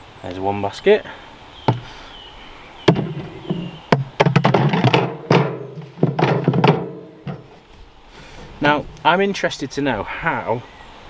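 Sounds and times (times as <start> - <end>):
wire basket knocking on plastic: 2.9 - 7.5.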